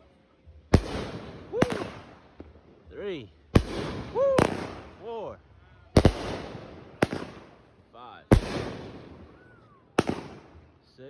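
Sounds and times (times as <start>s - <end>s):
fireworks bangs: 0.7s - 2.8s, 3.5s - 5.1s, 6.0s - 10.7s.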